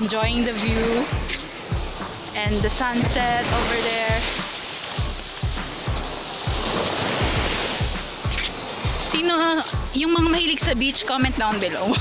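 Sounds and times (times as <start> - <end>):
small waves washing onto shore: 0.0 - 12.0
wind buffeting microphone: 0.0 - 12.0.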